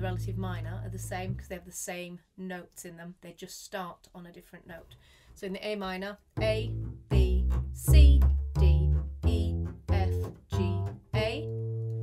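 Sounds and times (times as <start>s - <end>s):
double bass plucked notes: 0.0s - 1.6s, 6.4s - 12.0s.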